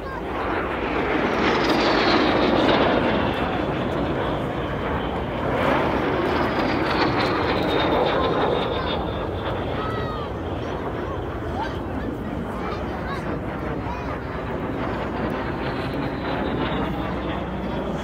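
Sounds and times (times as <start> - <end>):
falling turbine whine: 0.0 - 18.0
jet engine passing: 0.0 - 18.0.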